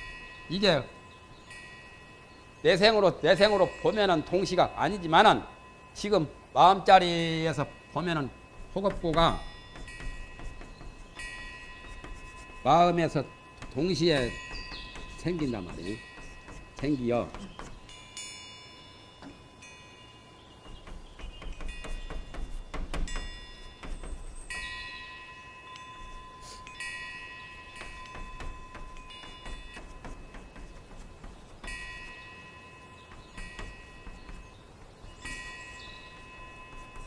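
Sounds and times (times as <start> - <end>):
bell-like chime tones: 0.0 - 8.6
chalk writing on a blackboard: 8.6 - 17.8, 20.6 - 24.7, 25.8 - 32.2, 33.1 - 37.0.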